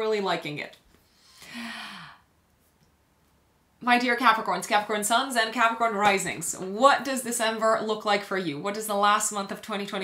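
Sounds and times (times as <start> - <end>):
woman sighing: 1.4 - 2.2.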